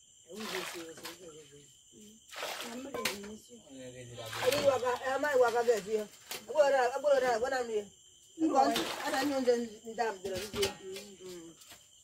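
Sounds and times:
water splashes: 0.3s - 1.4s, 2.3s - 3.2s, 4.2s - 6.5s, 8.6s - 9.6s
women talking: 0.3s - 3.6s, 4.4s - 11.6s.

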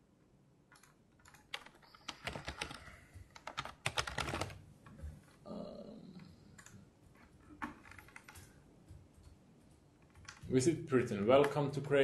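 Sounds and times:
laptop keyboard typing: 0.7s - 4.6s, 6.5s - 10.6s.

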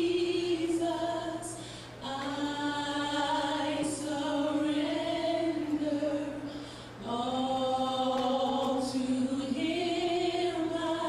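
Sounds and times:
women singing in harmony: 0.0s - 11.0s.

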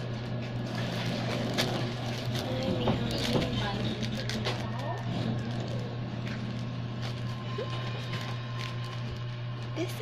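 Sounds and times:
plastic bag crinkling: 0.0s - 10.0s
steady low hum: 0.0s - 10.0s.

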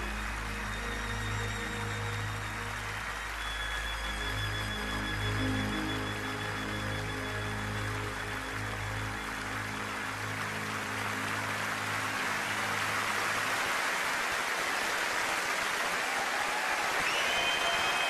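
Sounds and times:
audience applause: 0.0s - 5.2s, 7.9s - 18.0s.

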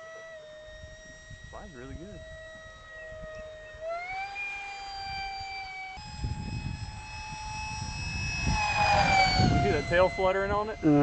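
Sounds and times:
electric ducted fan whining: 0.0s - 11.0s.

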